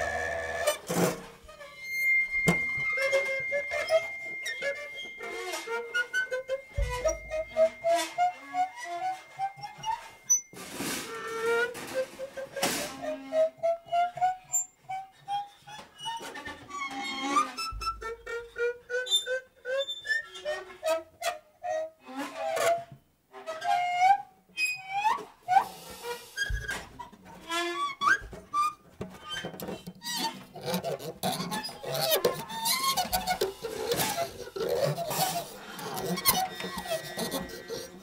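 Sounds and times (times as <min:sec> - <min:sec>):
squeaking whistle-like tones: 0:00.0 - 0:11.8, 0:30.2 - 0:38.0
brief scraping bursts: 0:30.2 - 0:38.0.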